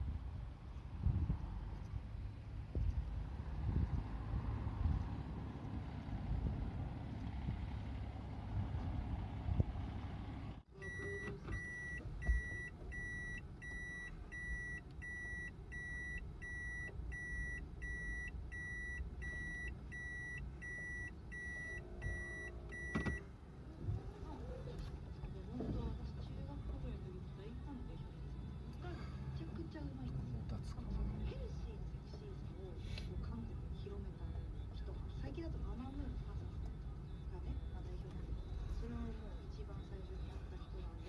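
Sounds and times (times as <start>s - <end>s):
car engine rumble: 0.0s - 41.0s
wind: 0.0s - 41.0s
car warning beep: 10.7s - 23.3s.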